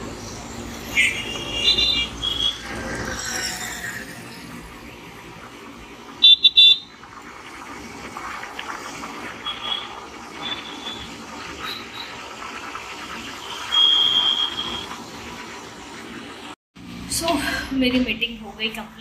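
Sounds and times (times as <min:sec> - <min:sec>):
vehicle horns honking: 0:00.9 - 0:02.6, 0:06.2 - 0:06.9.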